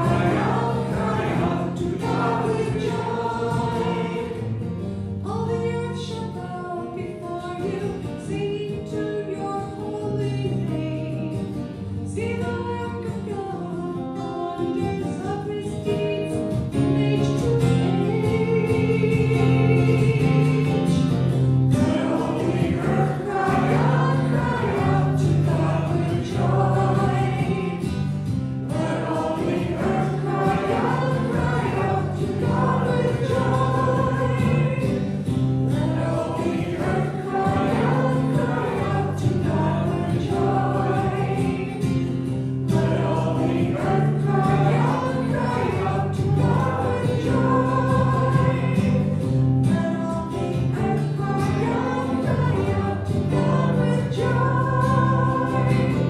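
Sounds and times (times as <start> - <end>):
voices singing a sacred song: 0.0 - 4.6, 21.7 - 56.0.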